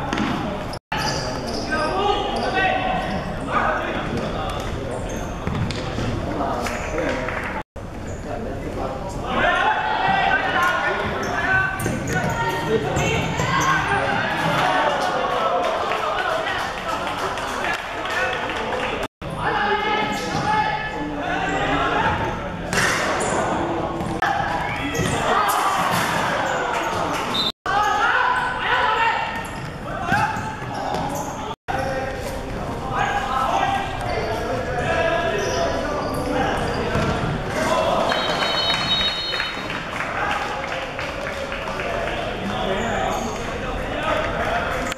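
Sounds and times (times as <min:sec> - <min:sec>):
shoes squeaking on floor: 0:00.1 - 0:04.0, 0:04.6 - 0:07.2, 0:10.6 - 0:14.2, 0:26.4 - 0:31.5, 0:34.0 - 0:37.4, 0:38.1 - 0:39.7, 0:42.8 - 0:43.5
players shouting in a hall: 0:09.3 - 0:18.0.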